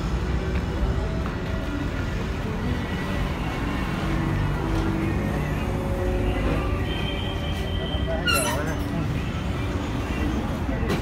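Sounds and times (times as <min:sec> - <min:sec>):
traffic rumble: 0:00.0 - 0:11.0.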